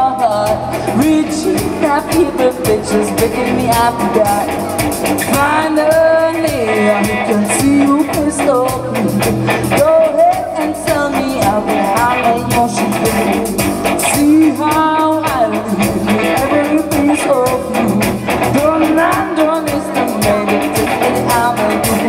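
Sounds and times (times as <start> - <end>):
live rock band playing: 0.0 - 22.0
woman singing lead vocal: 0.0 - 22.0.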